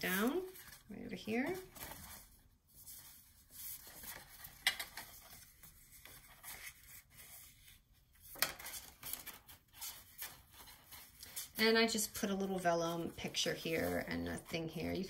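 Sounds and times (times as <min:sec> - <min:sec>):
paper pages flipped: 0:00.0 - 0:11.6
paper rustling: 0:00.0 - 0:15.0.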